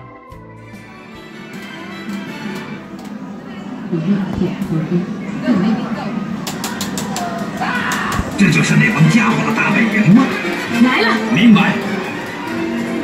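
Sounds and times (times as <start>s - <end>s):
voices: 1.6s - 13.0s.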